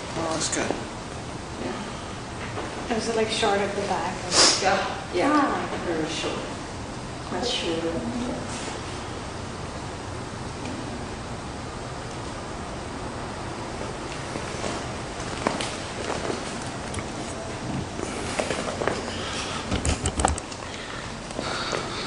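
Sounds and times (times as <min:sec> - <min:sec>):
steady background hiss: 0:00.0 - 0:22.0.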